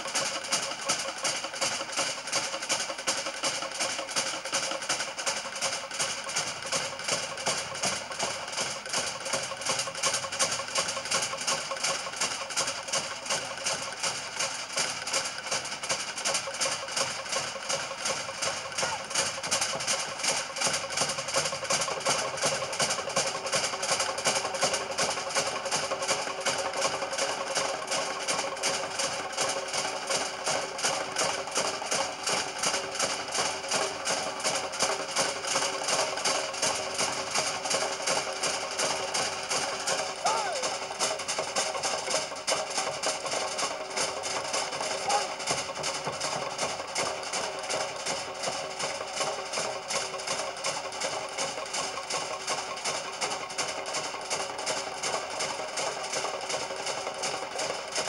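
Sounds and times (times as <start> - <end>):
fast steady drumming: 0.0 - 58.0.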